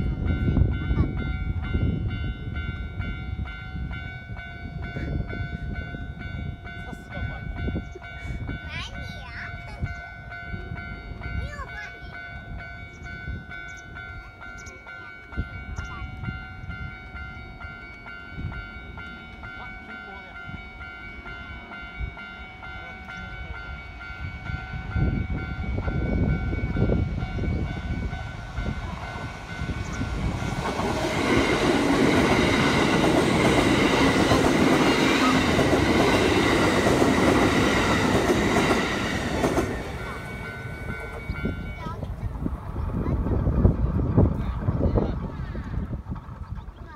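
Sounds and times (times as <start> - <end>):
level-crossing alarm ringing: 0.0 - 43.2
electric train passing: 0.0 - 46.9.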